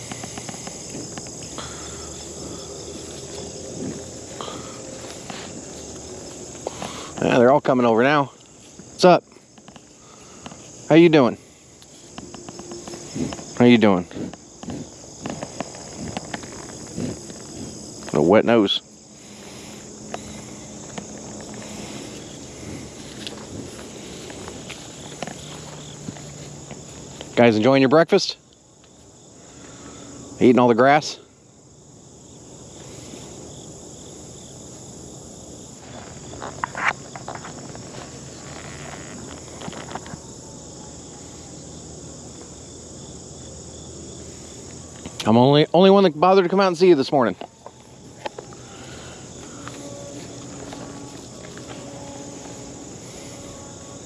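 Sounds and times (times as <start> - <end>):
crackles and rustles: 0.0 - 7.8, 8.4 - 18.5, 19.1 - 27.7, 35.6 - 41.6
insects chirping: 0.0 - 54.0.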